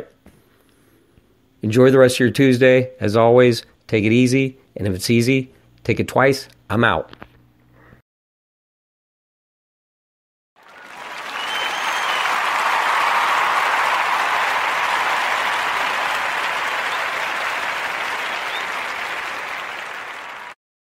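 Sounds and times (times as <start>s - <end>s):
crowd applause and cheering: 10.6s - 20.6s
faint short whistle: 11.3s - 12.4s.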